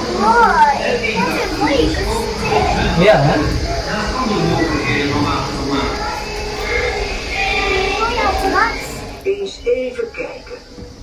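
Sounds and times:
children's voices chattering: 0.0s - 9.4s
steady low rumble: 0.0s - 9.8s.

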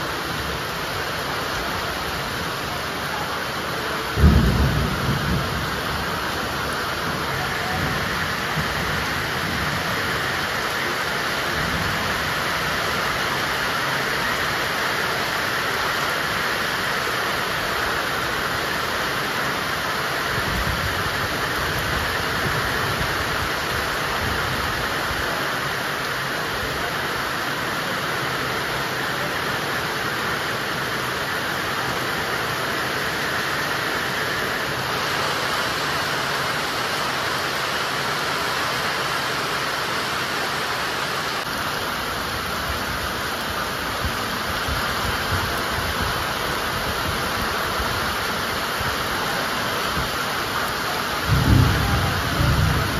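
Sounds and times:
heavy rain pouring: 0.0s - 52.9s.

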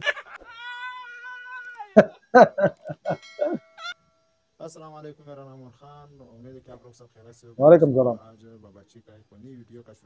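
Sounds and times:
man's high-pitched squealing laugh: 0.0s - 4.0s.

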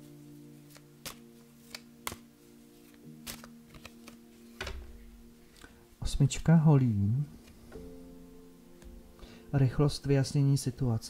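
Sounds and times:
quiet background music: 0.0s - 11.0s
cards being shuffled: 0.5s - 5.7s.

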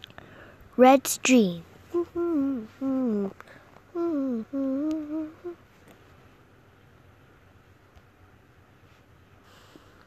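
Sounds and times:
person humming a tune: 1.9s - 5.6s.

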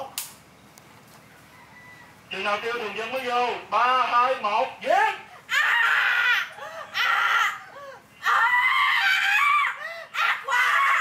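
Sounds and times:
woman wailing: 5.5s - 11.0s.

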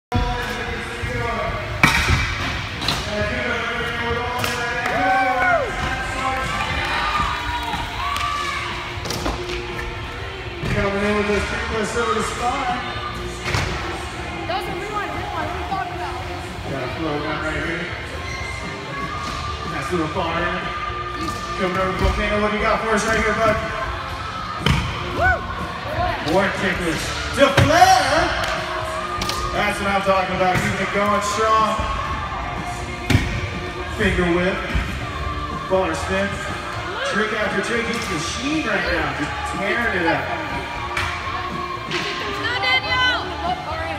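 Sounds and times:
background music: 0.1s - 43.9s.

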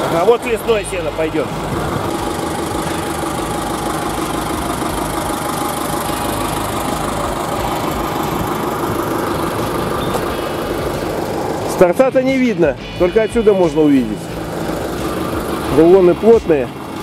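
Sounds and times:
tractor diesel engine running: 0.0s - 17.0s.

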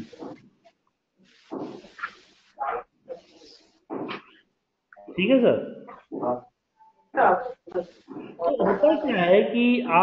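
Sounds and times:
dog barking: 1.9s - 2.9s.

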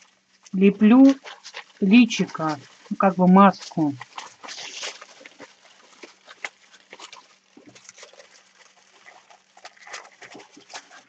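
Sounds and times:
aluminium foil crinkling: 0.0s - 11.0s.

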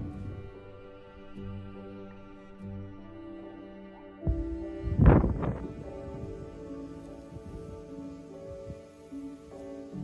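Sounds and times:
slow instrumental music: 0.0s - 10.0s.

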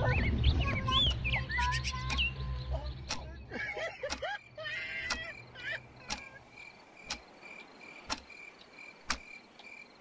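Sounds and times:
crickets chirping: 4.3s - 10.0s
sharp tick: 7.0s - 7.3s, 8.1s - 8.3s, 9.0s - 9.3s.

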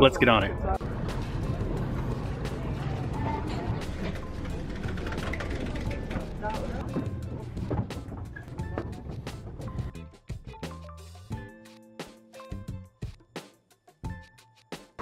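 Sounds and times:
background music: 0.0s - 15.0s
boat engine rumble: 0.8s - 10.0s.

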